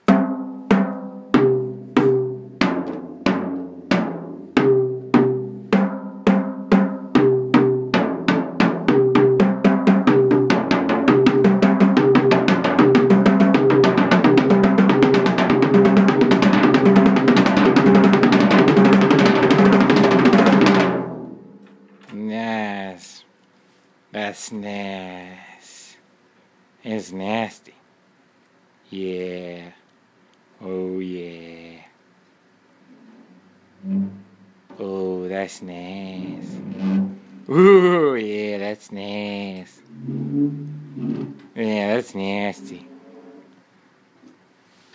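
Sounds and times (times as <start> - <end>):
drum fill speeding into roll: 1.4 - 21.2.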